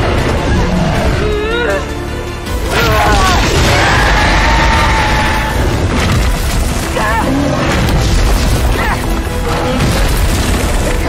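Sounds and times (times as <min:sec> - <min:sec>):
dramatic orchestral score: 0:00.0 - 0:11.0.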